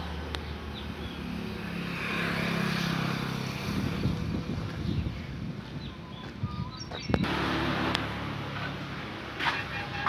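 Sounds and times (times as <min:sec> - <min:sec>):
vehicle driving past: 0:00.0 - 0:04.6, 0:07.2 - 0:10.0.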